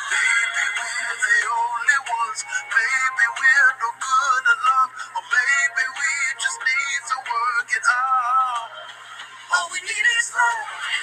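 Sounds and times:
tinny love song with vocals: 0.0s - 11.0s.

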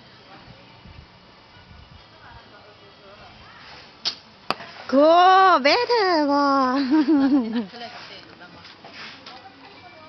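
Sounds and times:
bowstring snap: 4.0s - 4.6s
arrow hitting target: 4.0s - 4.9s.

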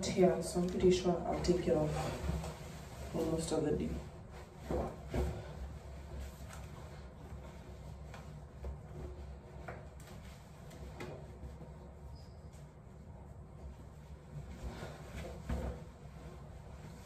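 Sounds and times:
low room hum: 0.0s - 17.0s.

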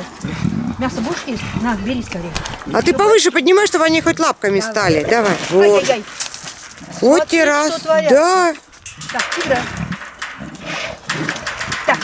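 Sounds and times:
big cats calling and growling: 0.0s - 7.9s, 8.9s - 12.0s.

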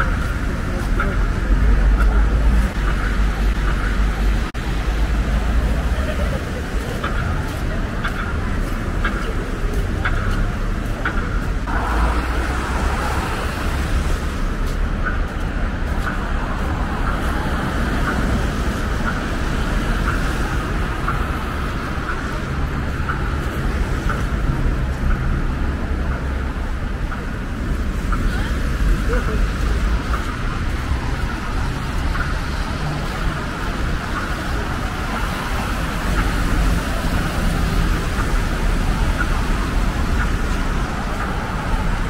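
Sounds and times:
cars driving on wet road: 0.0s - 42.0s.

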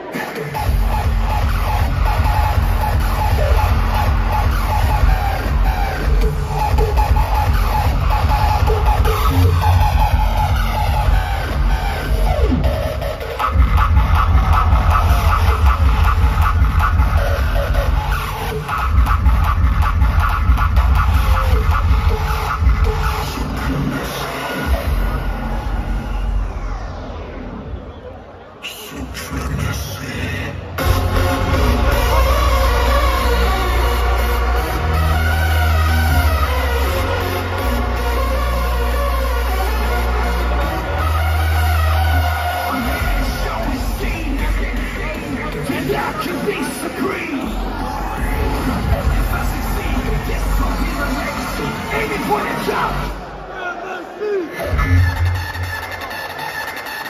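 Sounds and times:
electronic dance music over pa: 0.0s - 57.0s
heavy kick-drum beat: 0.4s - 25.5s.

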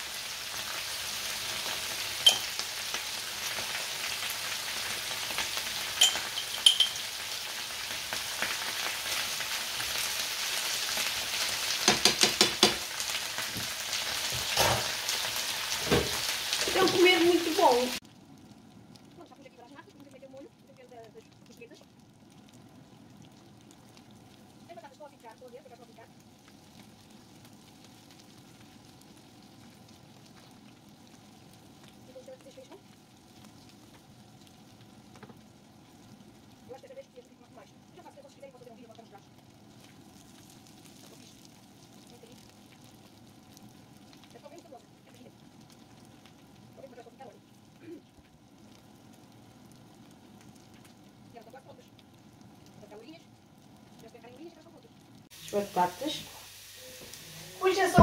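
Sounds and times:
potatoes sizzling in a pan: 0.0s - 58.0s
sauce simmering: 0.0s - 58.0s.

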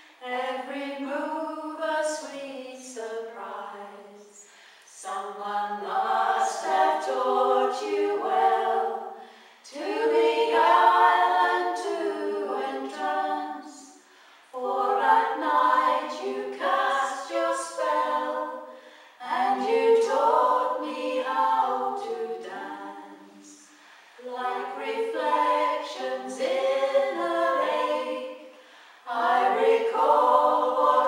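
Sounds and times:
women singing in harmony: 0.0s - 31.0s
singers breathing: 4.3s - 5.0s, 9.1s - 9.7s, 13.9s - 14.6s, 18.6s - 19.2s, 23.3s - 24.3s, 28.4s - 29.1s.

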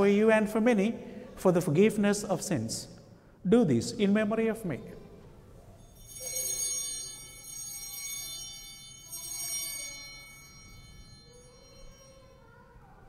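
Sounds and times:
altar bells ringing: 5.7s - 13.0s.

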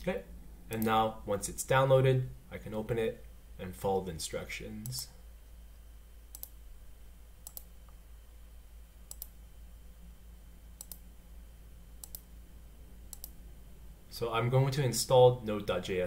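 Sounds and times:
faint low hum: 0.0s - 16.0s
computer mouse button clicking: 7.4s - 7.7s, 9.1s - 9.3s, 10.8s - 11.0s, 12.0s - 12.2s.

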